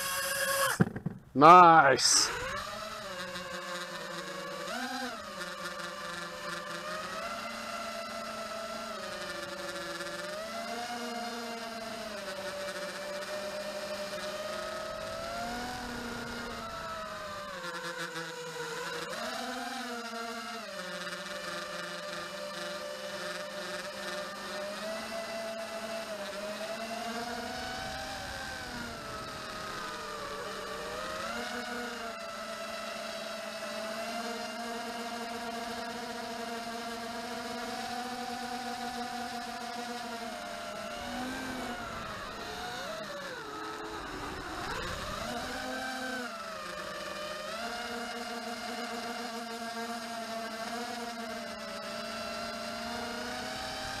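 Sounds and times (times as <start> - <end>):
quadcopter motors whining: 0.0 - 54.0.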